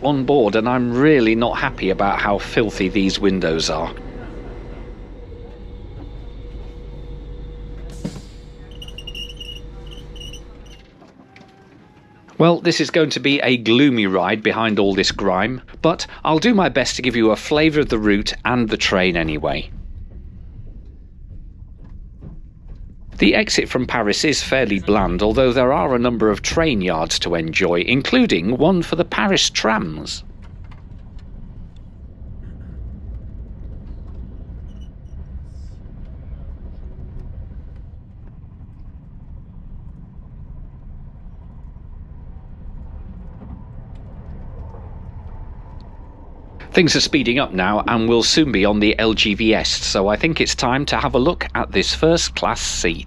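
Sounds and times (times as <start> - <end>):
train rumbling from inside coach: 0.0 - 53.0.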